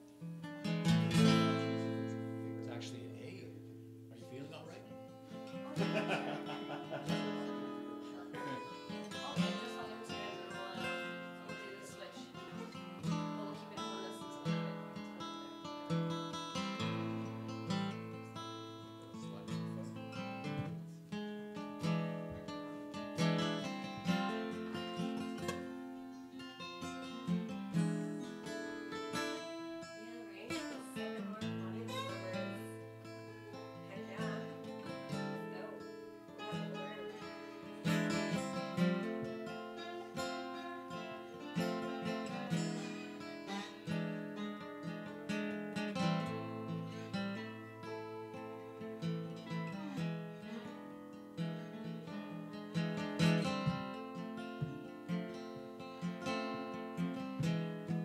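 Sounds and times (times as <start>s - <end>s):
two acoustic guitars playing: 0.0s - 58.0s.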